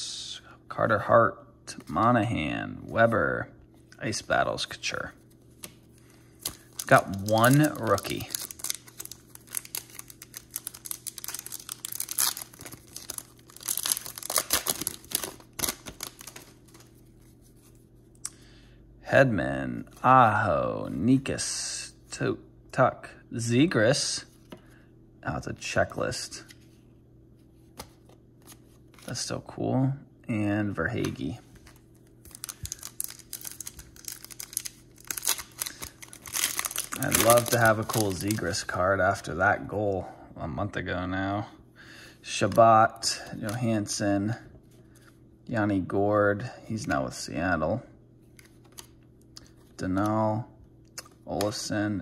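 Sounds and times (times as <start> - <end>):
cards being handled: 5.0 - 17.8, 27.5 - 29.3, 30.9 - 38.6, 48.2 - 49.8
foil wrapper tearing and crinkling: 6.4 - 16.8, 32.2 - 38.4.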